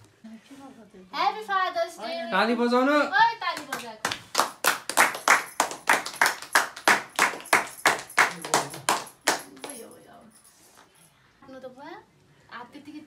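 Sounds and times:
people clapping in rhythm: 0:03.6 - 0:09.8.

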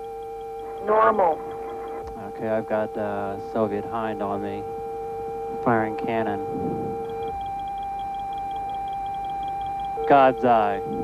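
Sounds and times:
steady electronic tones: 0:00.0 - 0:11.0.

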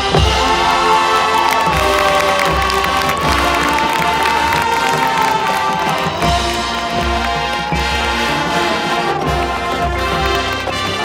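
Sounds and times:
brass chords: 0:00.0 - 0:11.0
crowd cheering: 0:00.0 - 0:11.0.

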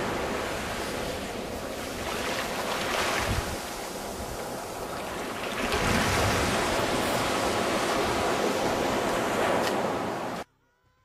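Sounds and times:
waves washing on a beach: 0:00.0 - 0:10.4.

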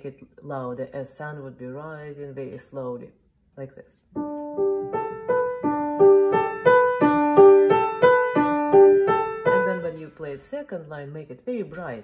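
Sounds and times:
upright piano repeating notes: 0:04.2 - 0:10.1.

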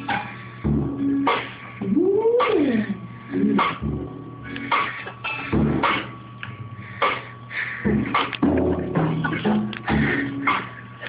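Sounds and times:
drum hits: 0:04.7 - 0:06.2, 0:07.9 - 0:10.2.

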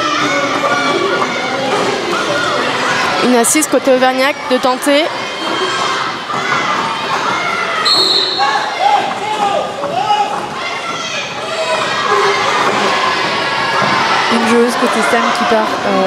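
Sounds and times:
crowd voices echoing: 0:00.0 - 0:16.0
players shouting: 0:00.0 - 0:16.0
roller skate wheels on wooden floor: 0:05.2 - 0:15.4
high whistle-like tone: 0:07.8 - 0:08.6.

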